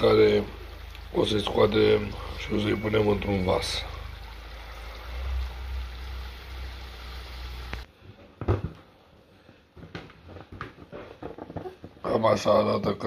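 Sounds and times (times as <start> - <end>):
low hum: 0.0 - 7.9
sausages sizzling in hot fat: 0.0 - 7.9.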